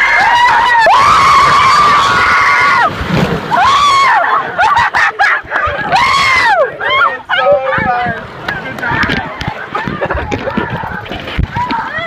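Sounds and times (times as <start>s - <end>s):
riders screaming: 0.0s - 5.0s, 5.7s - 7.5s
water splashing and rushing: 0.0s - 12.0s.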